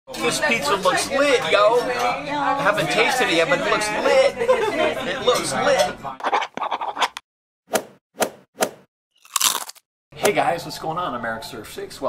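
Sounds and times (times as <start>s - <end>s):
cartoon crunching bite: 9.2s - 9.8s.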